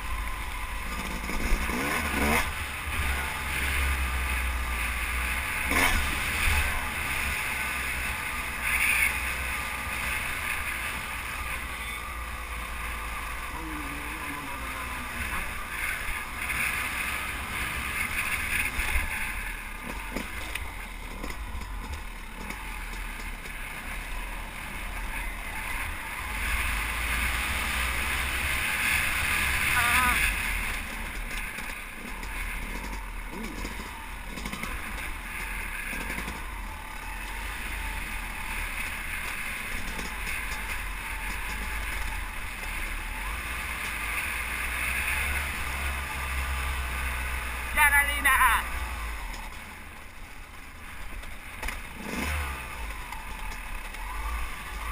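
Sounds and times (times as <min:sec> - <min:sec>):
dirt bike engine revving: 0:00.0 - 0:49.8, 0:50.8 - 0:54.9.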